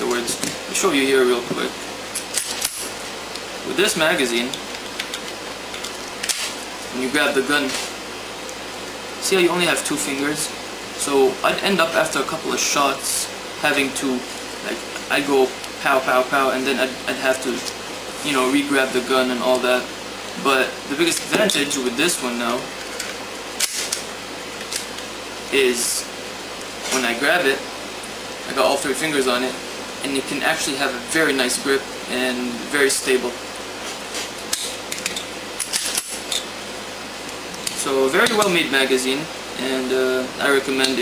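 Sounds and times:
background hiss: 0.0 - 41.0.

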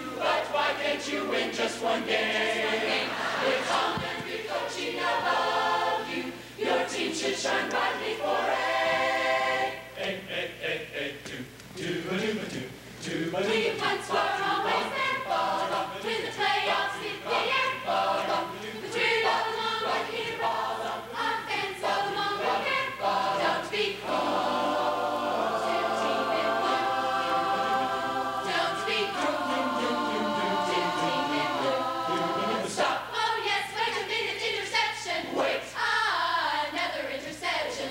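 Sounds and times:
large choir singing: 0.0 - 37.9.

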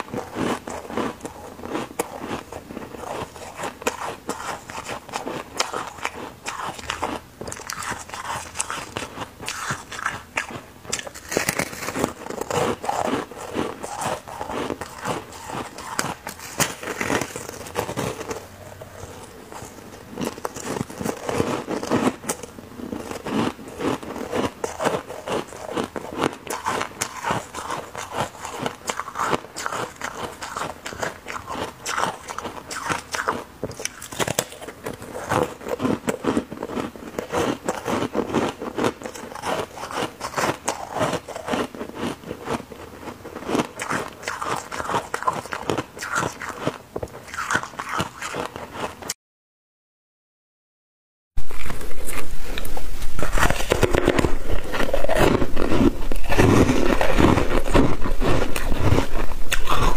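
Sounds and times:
ice being chewed crunching: 0.0 - 49.2, 51.4 - 59.9.

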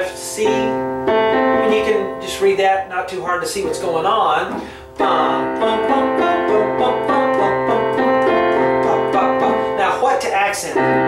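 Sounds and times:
digital piano repeated chords: 0.0 - 11.0.

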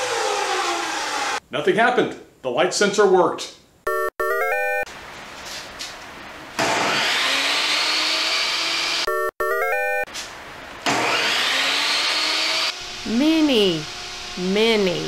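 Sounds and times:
table saw motor whining: 0.0 - 1.4, 6.6 - 10.0, 10.8 - 14.8.

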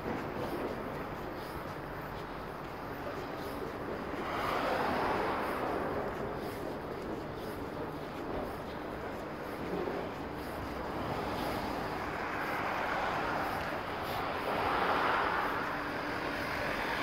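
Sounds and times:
road traffic passing: 0.0 - 17.0.

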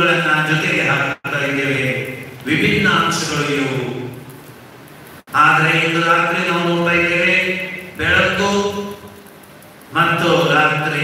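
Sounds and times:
man chanting a prayer: 5.3 - 9.0.

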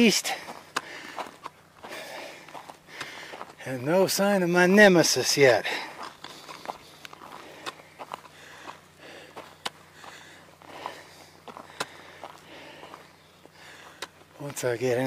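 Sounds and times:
footsteps on gravel trail: 0.0 - 15.0
person breathing: 0.3 - 3.6, 5.6 - 14.2.

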